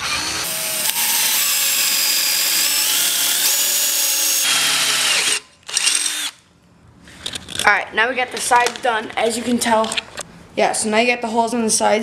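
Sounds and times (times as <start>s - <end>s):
power drill boring through metal: 0.0s - 6.4s.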